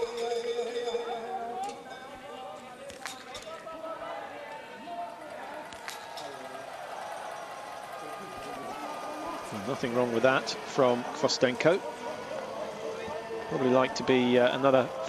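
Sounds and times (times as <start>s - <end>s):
crowd noise: 0.0s - 15.0s
distant announcer voice: 0.0s - 15.0s.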